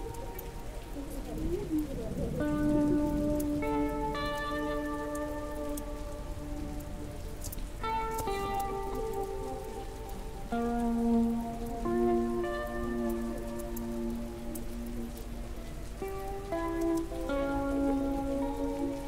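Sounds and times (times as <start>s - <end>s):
faint crackles: 0.0s - 19.0s
slow ambient music chords: 0.0s - 19.0s
steady hiss: 0.0s - 19.0s.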